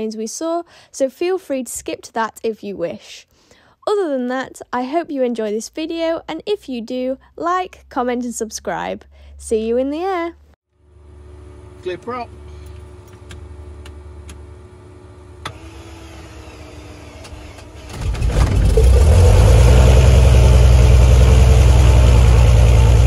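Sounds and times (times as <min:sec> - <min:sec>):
low hum: 0:10.8 - 0:23.0
piston aircraft engine starting: 0:11.0 - 0:23.0.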